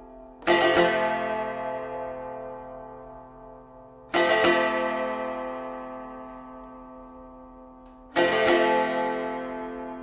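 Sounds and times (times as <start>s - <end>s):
long-necked lute chords: 0.0s - 10.0s.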